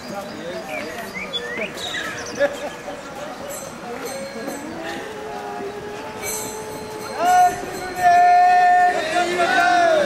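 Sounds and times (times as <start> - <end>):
crowd chatter: 0.0 - 10.0
conch shell blown: 4.6 - 8.1.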